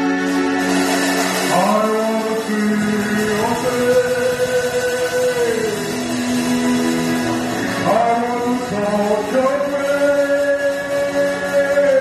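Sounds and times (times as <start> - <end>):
sustained accompaniment: 0.0 - 12.0
man singing gospel song: 1.4 - 6.3, 7.8 - 12.0.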